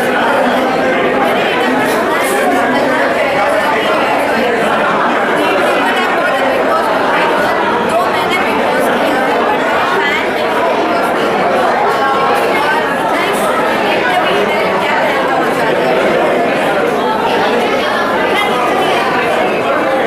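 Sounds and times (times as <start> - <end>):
crowd chatter: 0.0 - 20.0.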